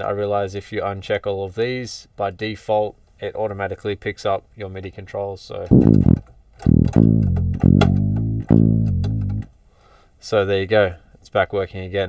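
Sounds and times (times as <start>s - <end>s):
electric bass notes: 5.7s - 9.5s.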